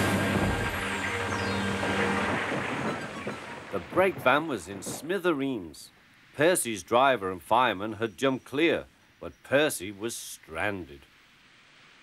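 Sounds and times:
orchestral music: 0.0s - 4.2s
long rattling debris: 0.0s - 5.4s
train crashing into wagon: 0.0s - 5.4s.

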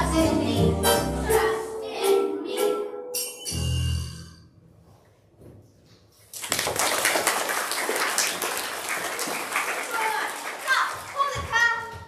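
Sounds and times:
music: 0.0s - 5.0s.

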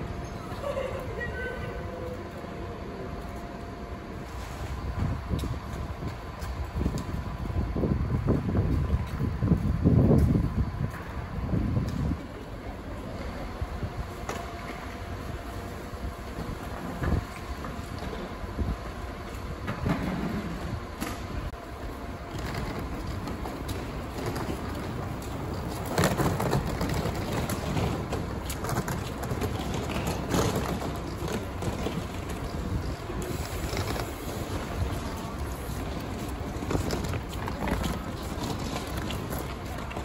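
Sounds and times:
suitcase wheels rattling over paving: 21.6s - 40.0s
footsteps of group walking: 21.8s - 40.0s.

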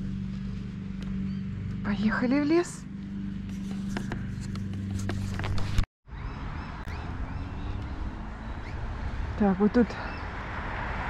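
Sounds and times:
steady low hum: 0.0s - 5.6s.

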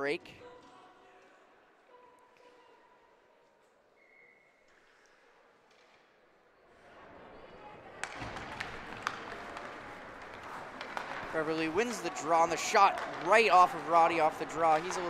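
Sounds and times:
sticks clacking on puck: 8.0s - 15.0s
skates scraping on ice: 8.1s - 15.0s.

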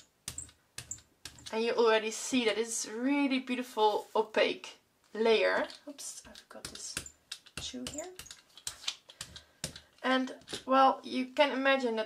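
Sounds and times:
rubber brayer sticky clicks: 5.6s - 10.6s.

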